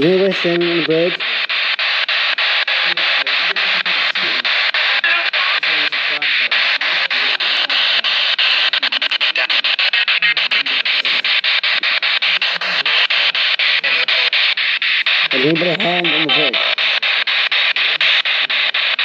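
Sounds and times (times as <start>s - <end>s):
broadcast voices and music fragments: 0.0s - 19.0s
loud radio static: 0.0s - 19.0s
rapid clicks: 0.0s - 19.0s.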